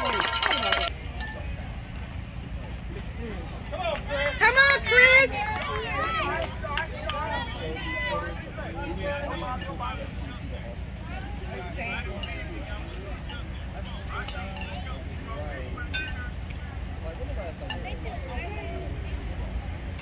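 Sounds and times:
distant voices chattering: 0.0s - 20.0s.

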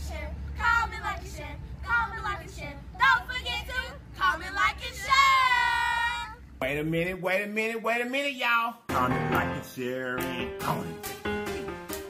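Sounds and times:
steady low hum: 0.0s - 7.3s.

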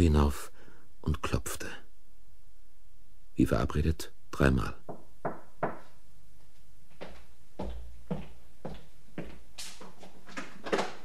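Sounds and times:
knocks on a door: 4.9s - 5.9s.

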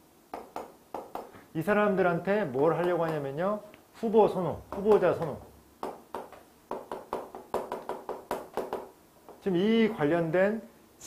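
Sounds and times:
chalk tapping on a blackboard: 0.3s - 1.4s, 2.5s - 3.4s, 4.7s - 9.4s.

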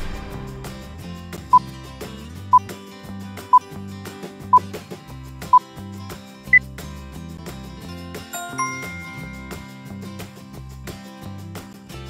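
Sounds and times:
countdown timer beeps: 8.4s - 10.3s.

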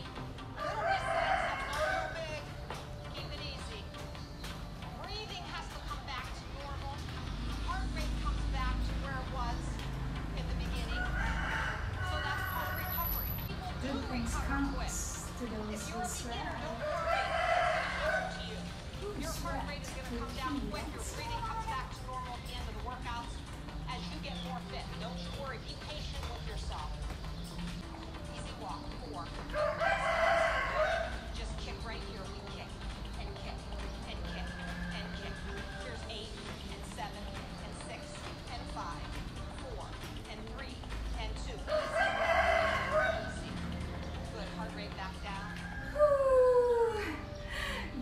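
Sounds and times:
rooster crowing: 0.6s - 2.5s, 10.8s - 13.5s, 16.8s - 18.7s, 29.5s - 31.3s, 34.3s - 36.1s, 41.7s - 43.5s.

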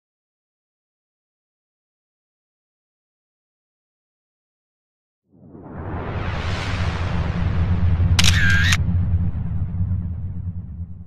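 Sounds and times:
deep rumbling whoosh: 5.3s - 11.0s
camera shutter click: 8.2s - 8.8s.

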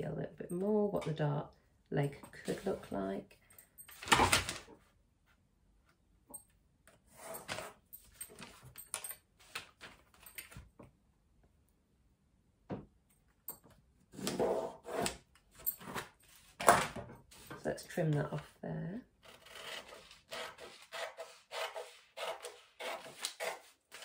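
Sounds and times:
paper rustling: 7.4s - 10.7s
pencil drawing along ruler: 14.2s - 15.2s, 19.2s - 24.0s
ruler knocking and scraping: 14.2s - 15.2s.

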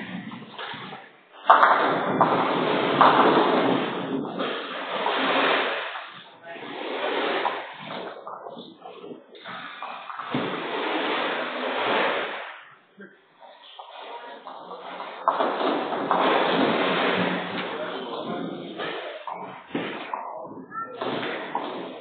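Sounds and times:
balls striking pins: 0.0s - 6.4s, 7.2s - 12.8s, 13.4s - 22.0s
bowling balls rolling: 0.0s - 22.0s.

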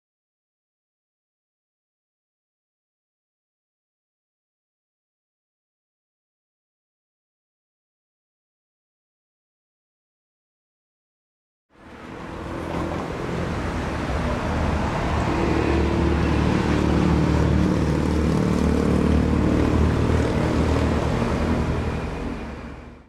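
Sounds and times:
car driving past: 11.8s - 23.0s.

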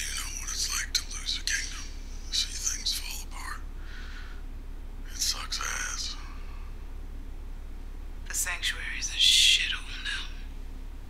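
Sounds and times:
man talking: 0.0s - 3.6s.

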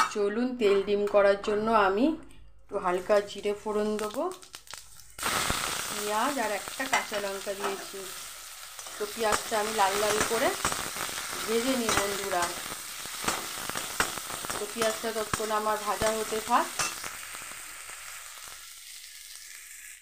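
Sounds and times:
onions sizzling in oil: 3.9s - 20.0s.

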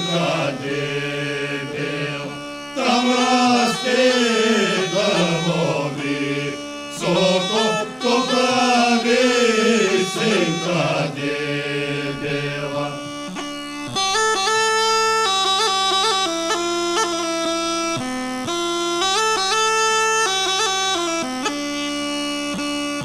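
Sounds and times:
voices singing folk song: 0.0s - 13.6s
bagpipe melody over drone: 0.0s - 23.0s.

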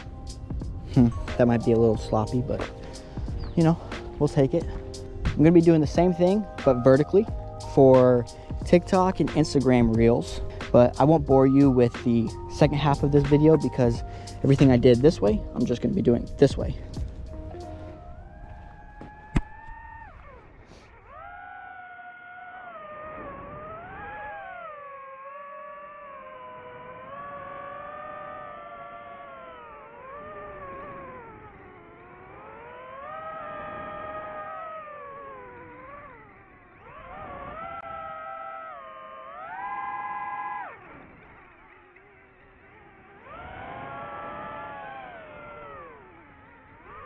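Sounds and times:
drone motors whining: 0.0s - 47.0s.

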